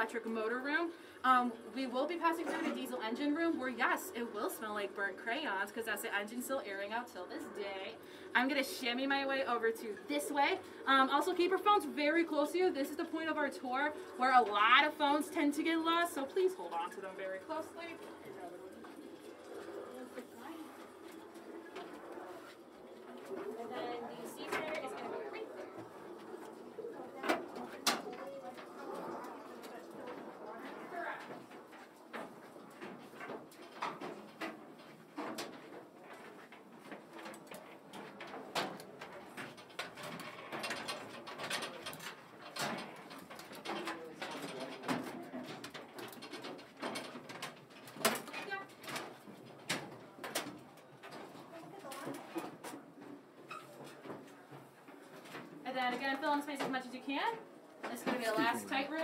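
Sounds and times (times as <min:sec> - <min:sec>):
low murmured voices: 0:00.0 - 0:34.4.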